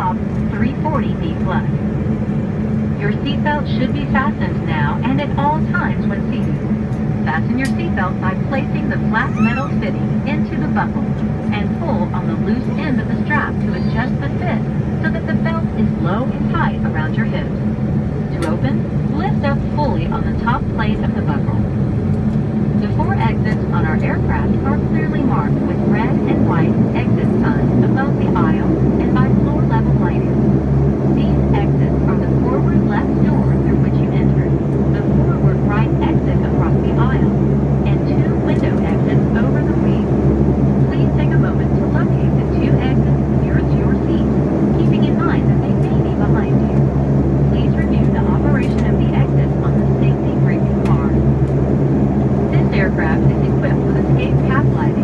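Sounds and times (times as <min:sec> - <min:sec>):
turboprop engine drone in cabin: 0:00.0 - 0:55.0.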